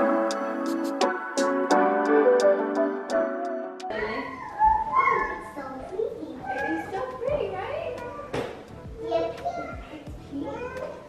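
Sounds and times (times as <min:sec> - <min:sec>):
faint background music: 0:00.0 - 0:11.0
young child talking: 0:04.2 - 0:11.0.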